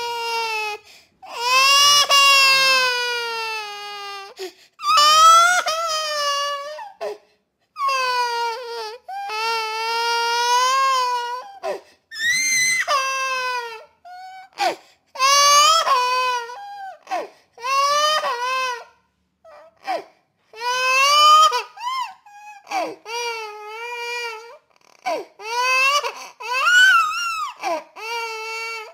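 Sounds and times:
baby crying: 0.0s - 7.2s, 7.8s - 28.9s.

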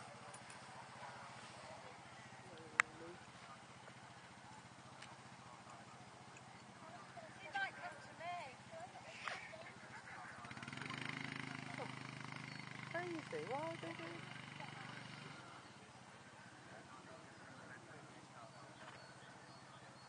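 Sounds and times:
distant talking: 0.0s - 20.0s
engine running: 0.0s - 20.0s.

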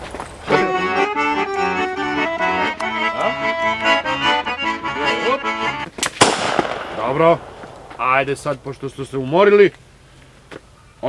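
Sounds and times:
accordion music: 0.4s - 6.0s
loud bang with hissing tail: 6.0s - 8.0s.

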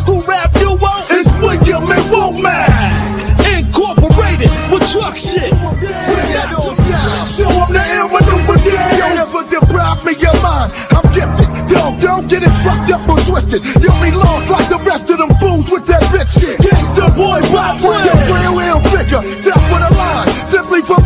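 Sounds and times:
rapping over a bass-heavy beat: 0.0s - 21.0s.

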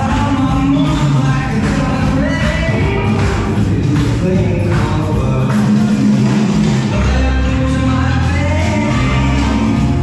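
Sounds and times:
swing music: 0.0s - 10.0s.

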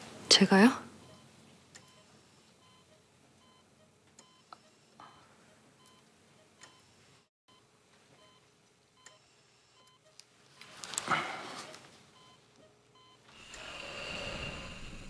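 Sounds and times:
patient monitor beeping: 1.0s - 14.0s.

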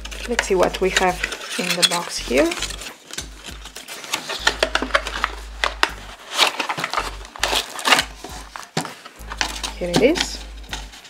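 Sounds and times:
cardboard packaging rustling and scraping: 0.0s - 11.0s.

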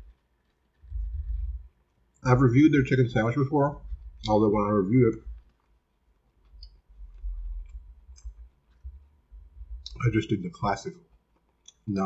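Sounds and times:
dull low thumps: 0.8s - 5.4s, 6.6s - 10.1s
wet mouth clicks: 11.6s - 11.9s.

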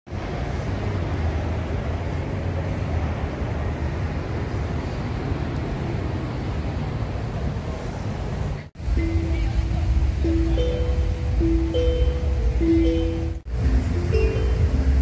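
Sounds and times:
low rumble of city noise: 0.1s - 15.0s.

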